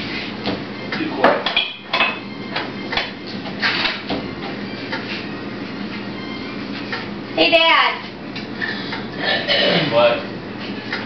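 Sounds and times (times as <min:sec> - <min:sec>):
dishes and cups clinking: 0:01.2 - 0:04.2.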